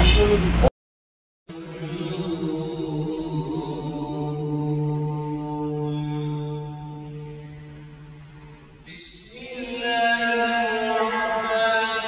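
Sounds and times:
man chanting: 1.5 - 12.0.

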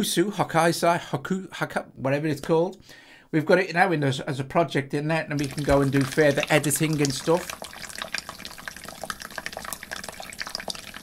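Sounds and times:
small water drips: 5.4 - 11.0
water trickling: 5.4 - 11.0.

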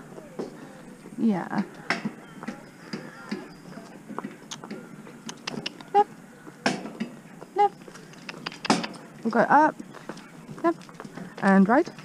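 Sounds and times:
hooves clip-clopping on pavement: 0.0 - 12.0.

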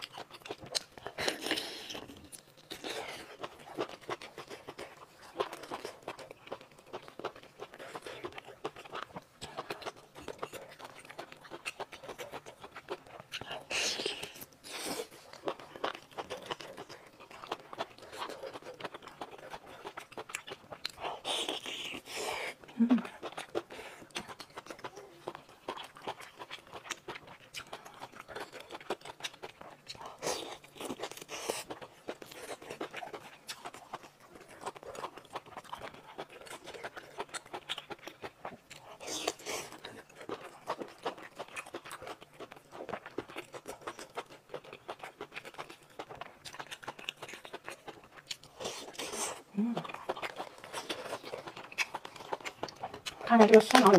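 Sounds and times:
person chewing with wet mouth sounds: 0.0 - 53.9.

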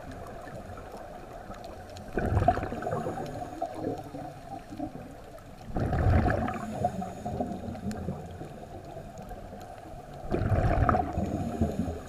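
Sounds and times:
faint crackling ticks: 0.0 - 12.0
muffled underwater noise: 0.0 - 12.0.

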